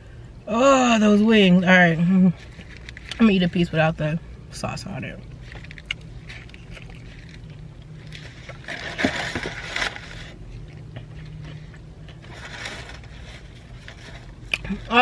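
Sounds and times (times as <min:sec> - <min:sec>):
steady low hum: 0:00.0 - 0:15.0
person chewing food: 0:05.3 - 0:14.8
paper wrapper crinkling: 0:05.4 - 0:10.6, 0:12.1 - 0:15.0.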